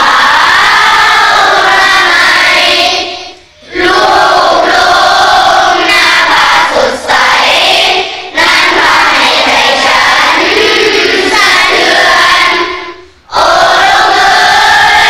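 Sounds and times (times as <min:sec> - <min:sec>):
children's voices in unison: 0:00.0 - 0:15.0.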